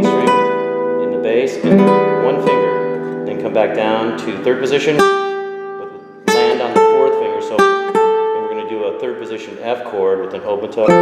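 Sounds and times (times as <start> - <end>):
fingerpicked classical guitar: 0.0 - 11.0.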